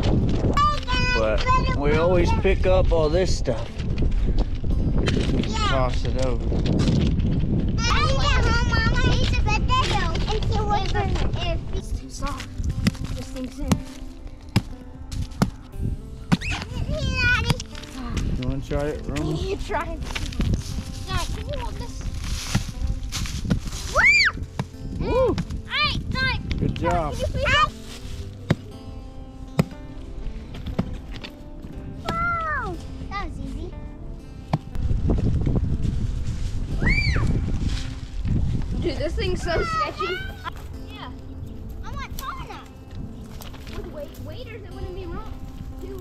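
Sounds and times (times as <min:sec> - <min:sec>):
background music: 0:00.0 - 0:46.0
hatchet chopping wood: 0:16.3 - 0:16.6, 0:29.6 - 0:29.8.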